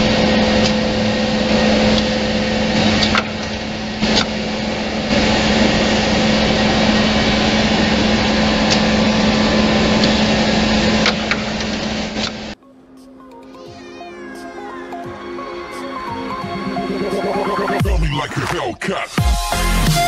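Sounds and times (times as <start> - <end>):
drilling machine running: 0.0 - 12.6.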